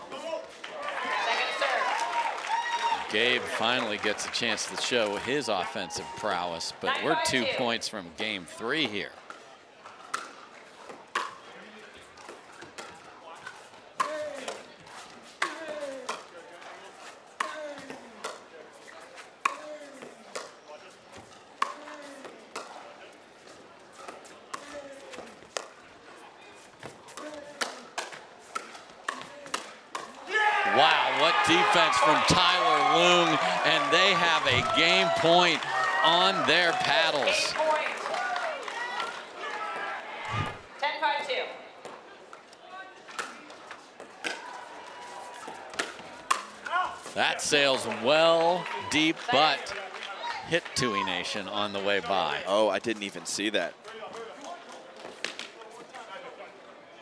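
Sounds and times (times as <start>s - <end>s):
crowd cheering and applauding: 0.6s - 6.6s, 30.3s - 40.6s, 47.2s - 51.4s
paddles hitting plastic ball: 45.4s - 47.2s.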